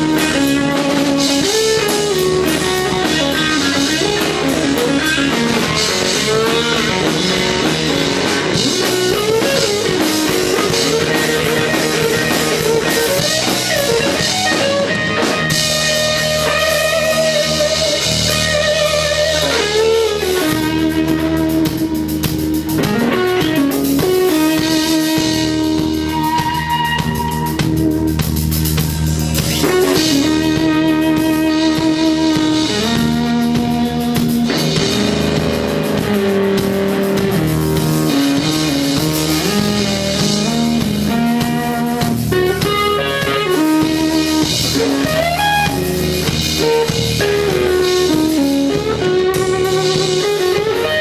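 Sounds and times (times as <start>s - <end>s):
drum kit: 0.0s - 51.0s
electric guitar lead: 0.0s - 51.0s.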